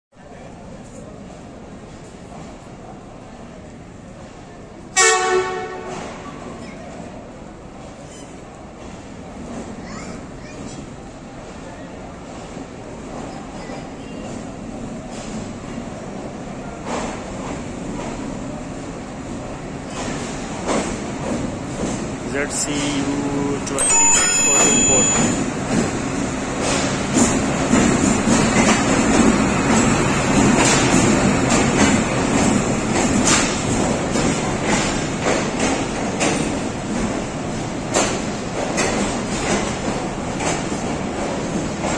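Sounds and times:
train rumbling into station: 0:00.2 - 0:41.9
train horn blast: 0:05.0 - 0:06.2
train wheels clicking on rail joints: 0:23.9 - 0:41.9.

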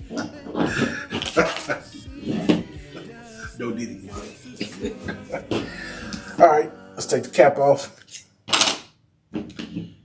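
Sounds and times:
man laughing: 0:00.1 - 0:07.8.

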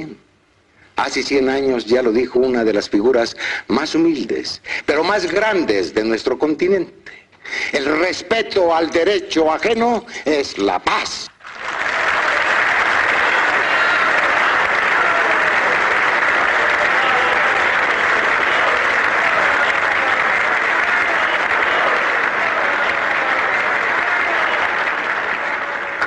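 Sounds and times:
large crowd applauding: 0:11.4 - 0:26.0.

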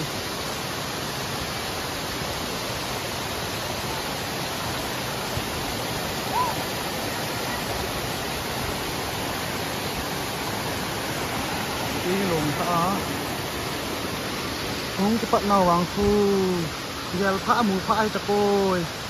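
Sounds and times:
rocky stream flowing: 0:00.0 - 0:19.0
waterfall rushing: 0:00.0 - 0:19.0.

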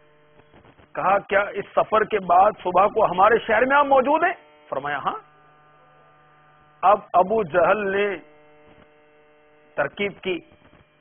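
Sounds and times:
electrical hum: 0:00.0 - 0:11.0
man speaking: 0:01.0 - 0:05.3, 0:06.8 - 0:08.3, 0:09.8 - 0:10.4.

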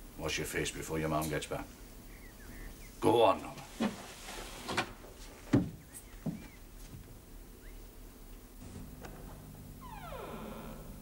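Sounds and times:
steady low hum: 0:00.0 - 0:11.0
door creaking open: 0:09.0 - 0:11.0.

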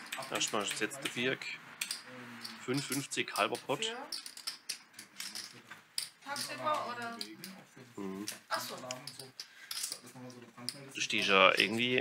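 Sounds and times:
poker chips clicking: 0:01.8 - 0:07.4, 0:08.3 - 0:10.0.

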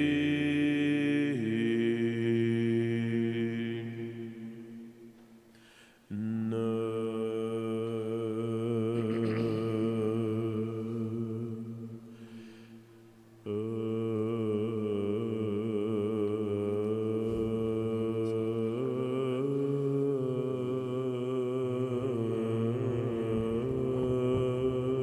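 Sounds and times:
steady low vocal drone: 0:00.0 - 0:05.1, 0:06.1 - 0:25.0
slow melismatic chant singing: 0:00.0 - 0:25.0.

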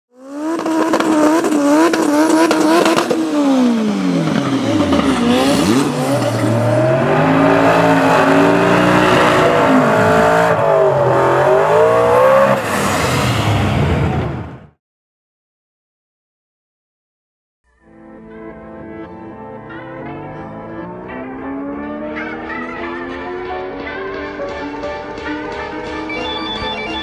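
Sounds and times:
car engine revving: 0:00.1 - 0:14.7, 0:20.0 - 0:27.0.

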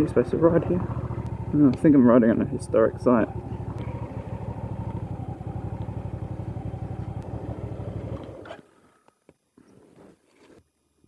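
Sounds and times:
motorcycle engine idling: 0:00.0 - 0:08.6
faint engine clicks: 0:00.1 - 0:07.4, 0:08.0 - 0:09.2.

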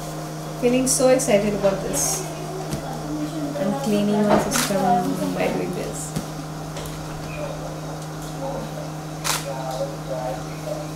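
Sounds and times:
steady low hum: 0:00.0 - 0:10.9
faint voices: 0:00.7 - 0:10.9.

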